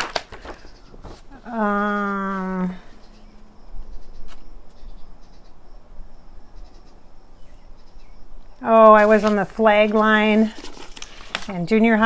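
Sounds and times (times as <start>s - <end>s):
papers rustling: 0.0s - 1.5s, 8.8s - 12.0s
insects chirring: 0.4s - 10.3s.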